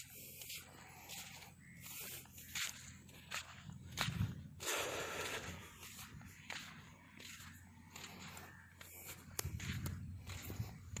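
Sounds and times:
footsteps on damp sand: 0:00.0 - 0:11.0.

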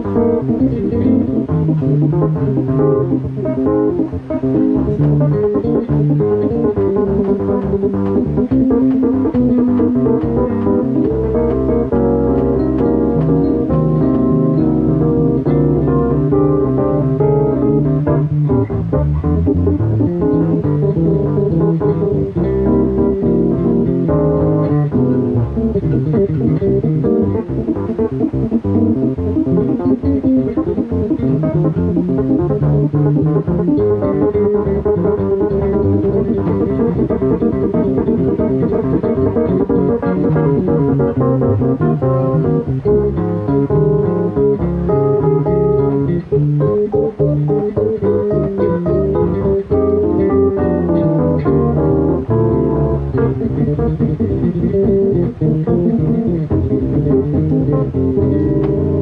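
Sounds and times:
digital stage piano: 0:00.0 - 0:59.0
electric bass guitar: 0:00.0 - 0:59.0.

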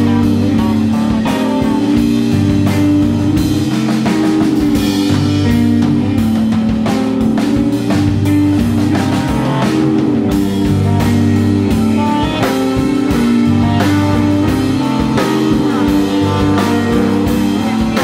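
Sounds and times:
drum kit: 0:00.0 - 0:18.0
electric bass: 0:00.0 - 0:18.0
electric guitar: 0:00.0 - 0:18.0.

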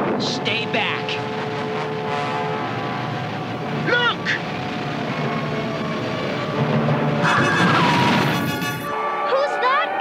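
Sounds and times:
rushing noise: 0:00.0 - 0:09.0
held horn-like chord: 0:07.2 - 0:09.7.

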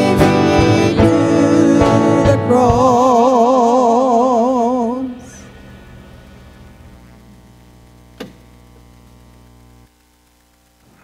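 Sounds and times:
band holding low chord: 0:00.0 - 0:09.0.

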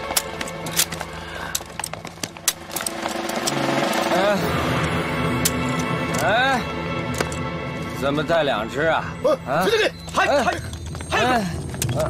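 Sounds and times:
handcuffs clicking: 0:00.0 - 0:04.0.

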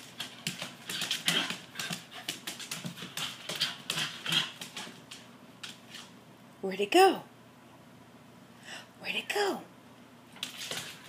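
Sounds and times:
dog claws clicking on wood floor: 0:00.0 - 0:06.1, 0:10.4 - 0:11.0.

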